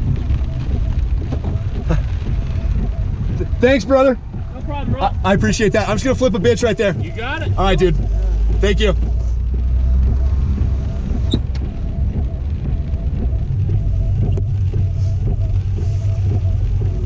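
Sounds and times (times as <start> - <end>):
car cabin rumble: 0.0 - 17.0
heavy rain: 0.0 - 17.0.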